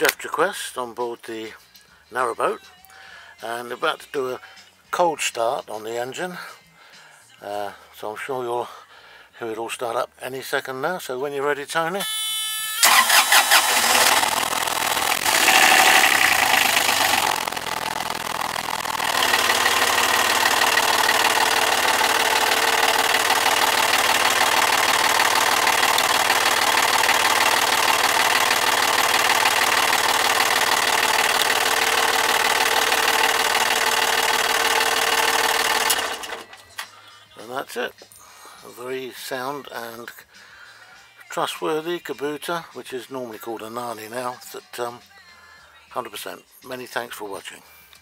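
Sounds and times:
diesel engine running: 12.8 - 36.7
starter motor cranking: 12.8 - 36.8.

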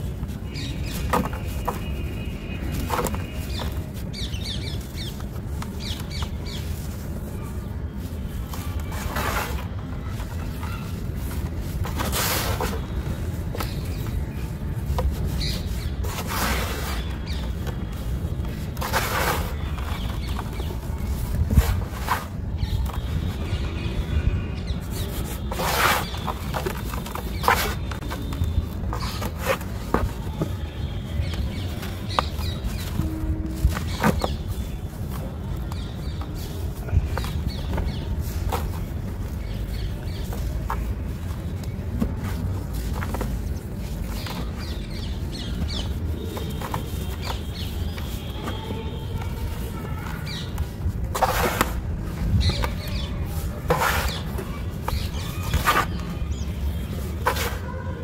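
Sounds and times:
hands sifting dry powder: 0.0 - 23.0
hands pushing into powder: 0.2 - 23.3.

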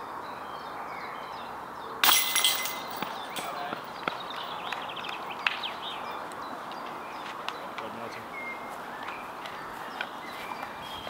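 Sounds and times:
basket chains jingling: 2.0 - 3.6.

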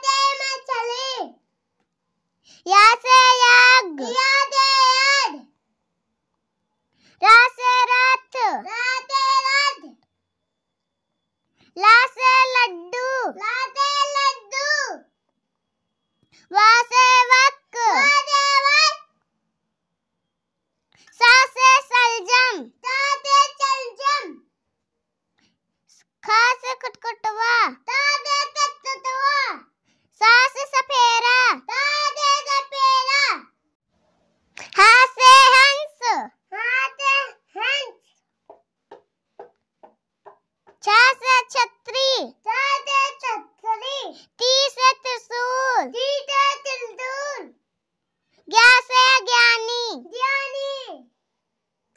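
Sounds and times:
child chanting in sing-song: 16.8 - 19.1, 21.4 - 24.4, 26.8 - 29.6.

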